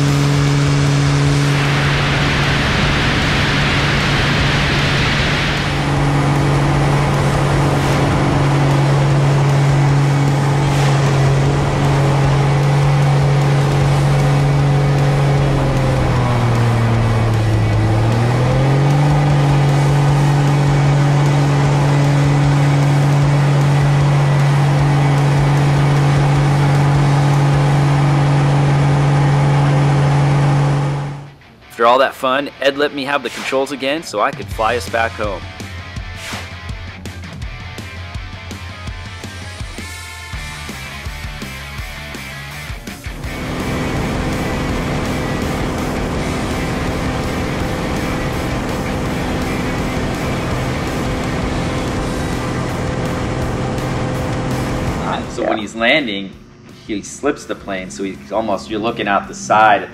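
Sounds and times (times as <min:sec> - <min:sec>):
propeller plane engine droning: 0:00.0 - 0:31.6, 0:34.4 - 0:59.9
wind rushing: 0:01.1 - 0:20.7.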